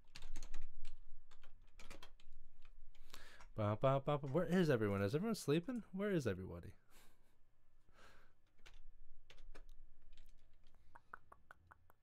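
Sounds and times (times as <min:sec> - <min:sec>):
keyboard typing: 0:00.0 - 0:05.0, 0:08.4 - 0:12.0.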